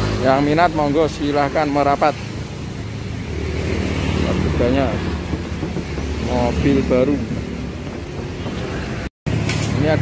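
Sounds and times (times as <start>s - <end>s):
motor vehicle rumble: 0.0s - 10.0s.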